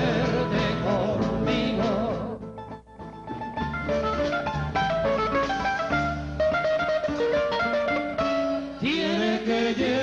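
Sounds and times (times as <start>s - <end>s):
lead guitar melodic run: 0.0s - 8.9s
acoustic guitars playing: 0.0s - 10.0s.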